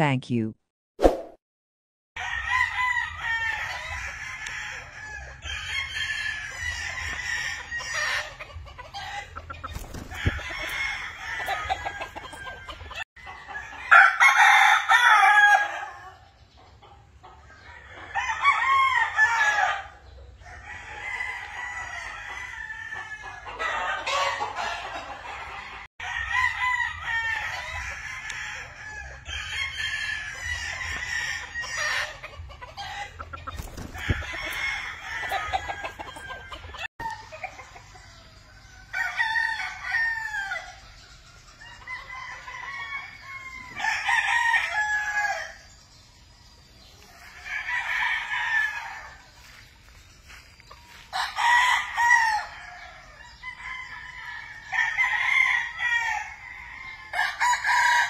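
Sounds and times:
roosters crowing: 2.2 - 16.4, 17.3 - 46.0, 46.7 - 58.0
roosters clucking: 2.2 - 58.0.

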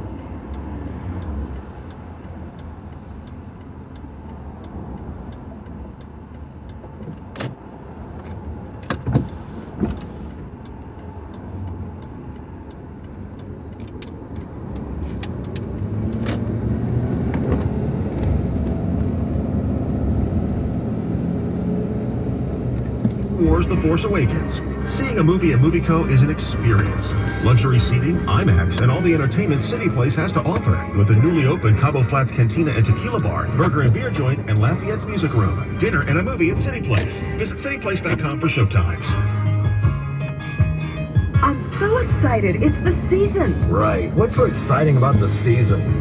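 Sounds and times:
engine and tyre rumble: 0.0 - 46.0
sharp clicks: 8.2 - 16.5.

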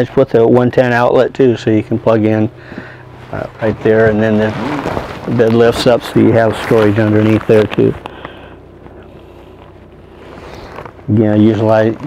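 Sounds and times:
low steady hum: 0.0 - 12.0
faint rustling: 2.5 - 12.0.

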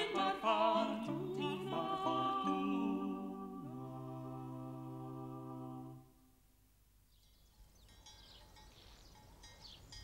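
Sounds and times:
vocal quartet chord: 0.0 - 6.3
faint bird chirps: 7.0 - 10.0.

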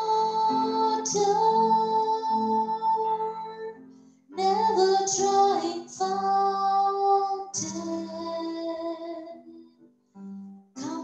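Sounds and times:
woman singing into a microphone: 0.0 - 9.4, 10.8 - 11.0.

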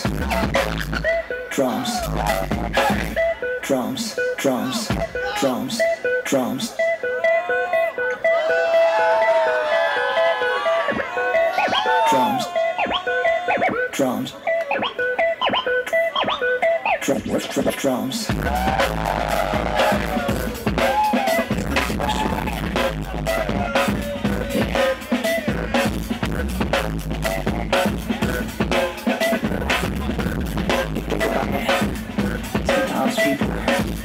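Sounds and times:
heavy bass line: 0.0 - 34.0
record scratching over a beat: 10.8 - 34.0.

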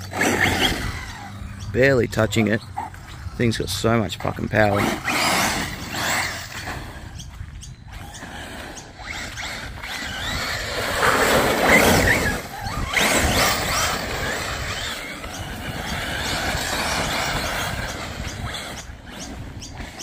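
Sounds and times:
rc car motor whine: 0.0 - 20.0
tyres scrabbling over loose dirt: 0.0 - 20.0.

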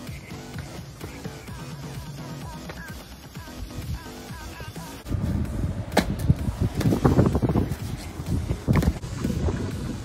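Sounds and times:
feet and hands landing on paving: 2.4 - 3.5, 8.6 - 9.7
wind rumbling on microphone: 5.0 - 10.0.

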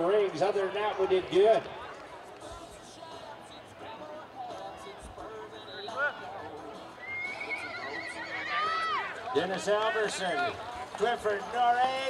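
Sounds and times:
horse whinnying: 7.0 - 9.1.

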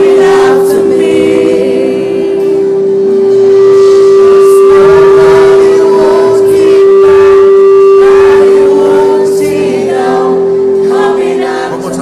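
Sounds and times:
voices singing: 0.0 - 12.0
held organ-like note: 2.1 - 12.0.

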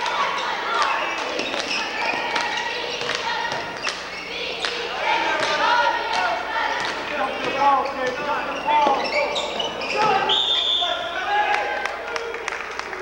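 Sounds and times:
people shouting in a hall: 0.0 - 13.0
referee's whistle: 8.5 - 11.2.

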